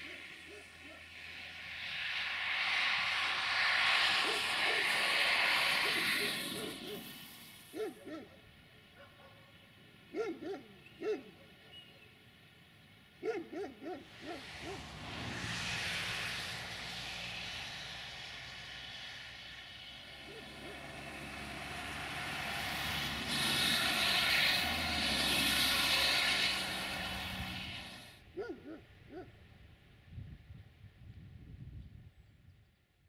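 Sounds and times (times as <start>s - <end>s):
diesel train engine drone: 0.0s - 29.8s.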